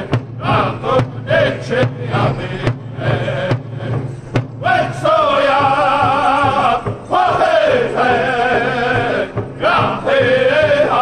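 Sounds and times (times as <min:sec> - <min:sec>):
bass drum steady beat: 0:00.0 - 0:11.0
men's high chanting: 0:00.0 - 0:11.0.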